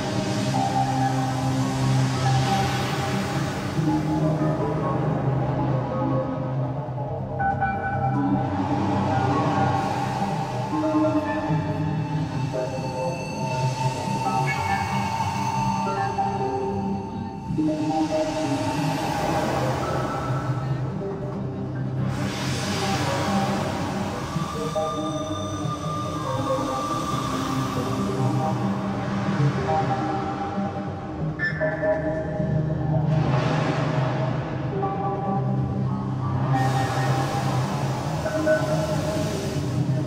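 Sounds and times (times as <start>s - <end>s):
hissing noise wash: 0.0s - 21.0s, 21.6s - 31.4s, 33.1s - 40.0s
electronic synthesizer music: 0.0s - 40.0s.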